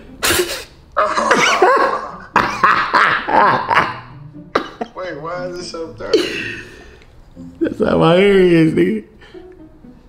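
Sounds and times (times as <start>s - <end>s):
men laughing hard: 1.0s - 5.0s, 6.0s - 7.0s.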